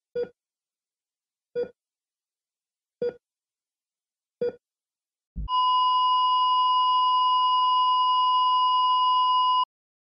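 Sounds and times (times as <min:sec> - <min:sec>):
continuous high electronic beep: 0:05.5 - 0:09.7.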